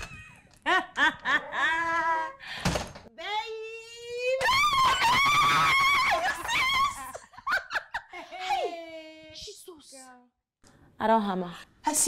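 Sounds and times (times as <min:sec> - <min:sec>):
women shrieking: 0:04.4 - 0:07.3.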